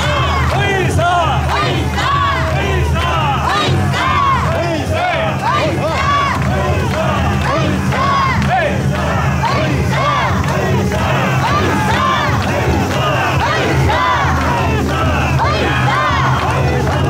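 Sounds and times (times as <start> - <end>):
group rhythmic shouting: 0.0 - 17.0
low crowd rumble: 0.0 - 17.0.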